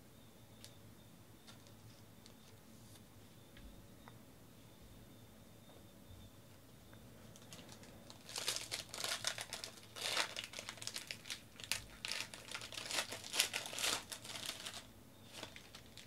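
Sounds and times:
foil wrapper tearing and crinkling: 0:07.4 - 0:16.0.

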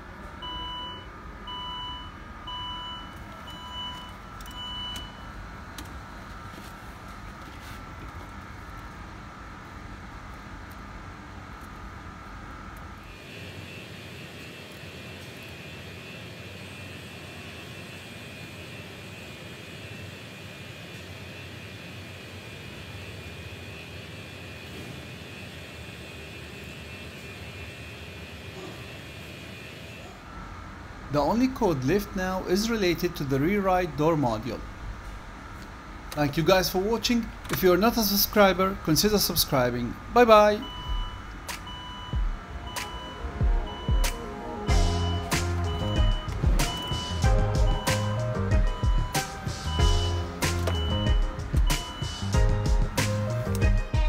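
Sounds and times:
steady background hum: 0:00.0 - 0:54.0
short electronic beeps: 0:40.6 - 0:52.3.

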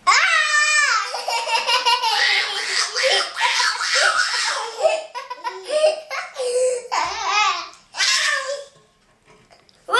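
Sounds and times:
baby laughing: 0:00.9 - 0:07.6.

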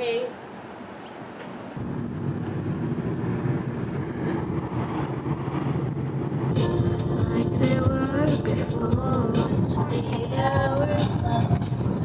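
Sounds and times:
engine and tyre rumble: 0:01.2 - 0:12.0
music: 0:06.5 - 0:12.0.

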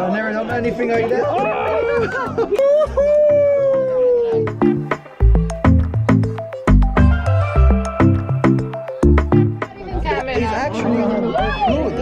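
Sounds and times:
electronic music with steady beat: 0:04.4 - 0:10.6.

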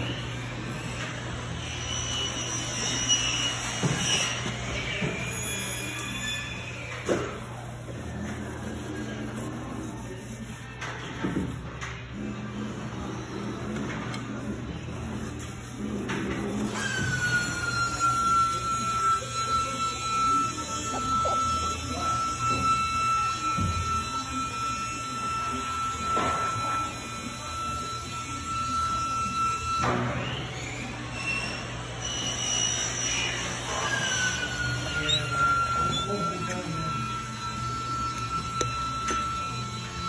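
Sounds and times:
high-pitched machine whine: 0:00.0 - 0:10.6, 0:16.5 - 0:40.0.

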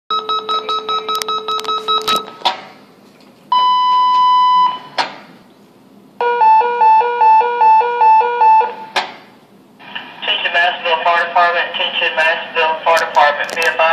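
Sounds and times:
alert tones over a loudspeaker: 0:00.1 - 0:02.3.

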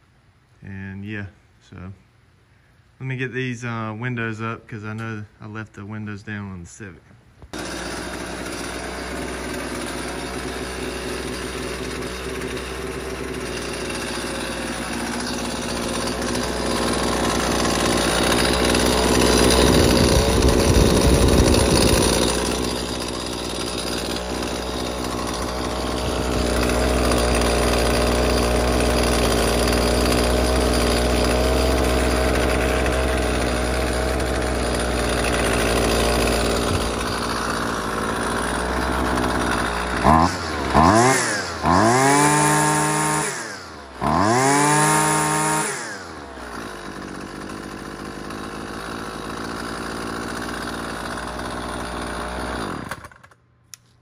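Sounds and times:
string trimmer engine revving: 0:07.5 - 0:53.4.

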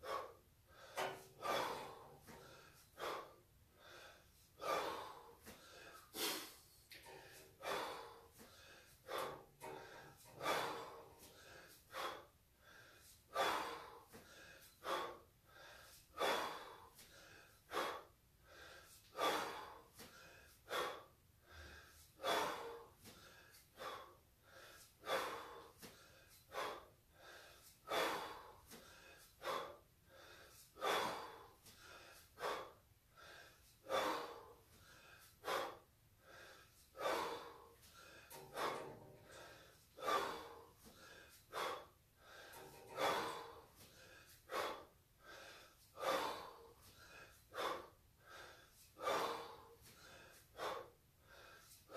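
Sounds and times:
man breathing hard: 0:00.0 - 0:51.9.

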